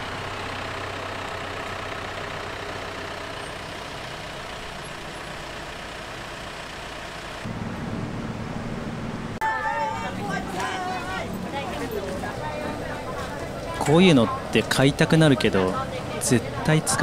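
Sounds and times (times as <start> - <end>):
small engine low rumble: 0.0 - 17.0
street traffic hum: 0.0 - 17.0.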